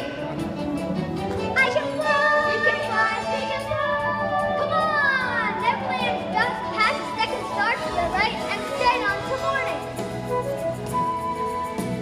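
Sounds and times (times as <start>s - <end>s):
children calling and squealing: 1.5s - 9.9s.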